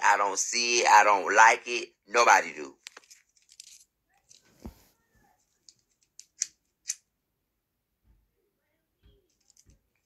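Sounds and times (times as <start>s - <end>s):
phone handling rustling: 2.8s - 4.8s.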